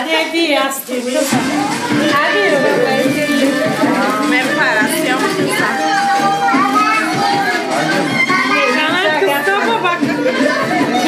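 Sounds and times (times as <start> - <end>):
background music: 0.0 - 11.0
voices: 0.0 - 11.0.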